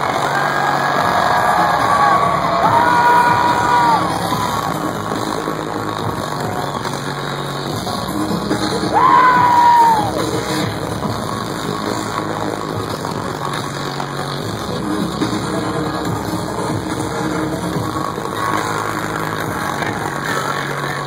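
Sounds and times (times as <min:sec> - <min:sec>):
crowd noise: 0:00.0 - 0:21.0
loud electronic bass music: 0:00.0 - 0:21.0.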